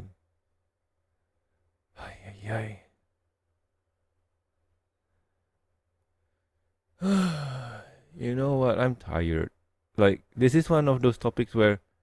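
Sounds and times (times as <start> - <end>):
man sighing: 7.0 - 8.2.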